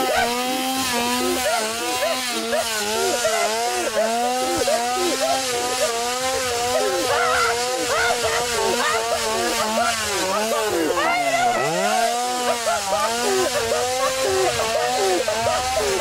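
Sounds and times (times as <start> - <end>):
chainsaw engine revving: 0.0 - 16.0.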